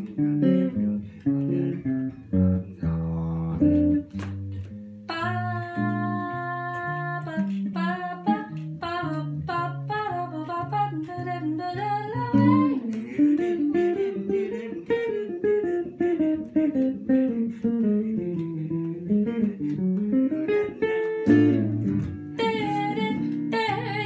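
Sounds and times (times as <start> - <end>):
walking bass line: 0.0 - 7.7, 15.7 - 23.8
electric jazz guitar: 0.0 - 24.0.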